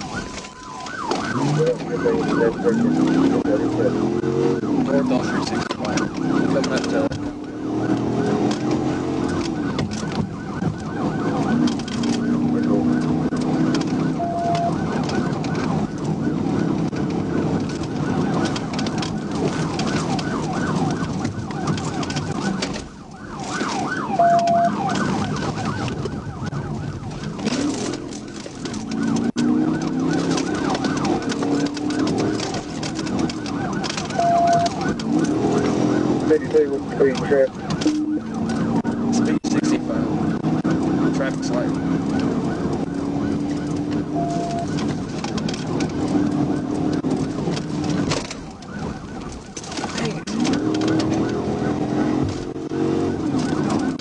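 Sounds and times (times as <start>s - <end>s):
car engine and road noise: 0.0s - 54.0s
police siren wailing and yelping: 0.0s - 54.0s
short beep: 14.2s - 14.7s.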